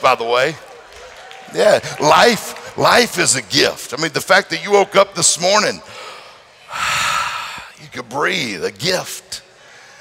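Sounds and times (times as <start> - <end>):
man breathing in deeply: 5.9 - 7.8.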